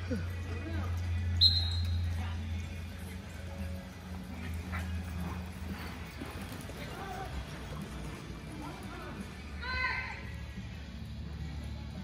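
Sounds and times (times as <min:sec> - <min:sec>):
hoofbeats on soft dirt: 0:00.2 - 0:12.0.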